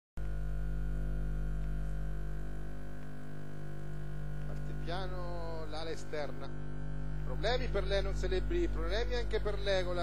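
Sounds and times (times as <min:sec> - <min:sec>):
electrical mains hum: 0:00.2 - 0:10.0.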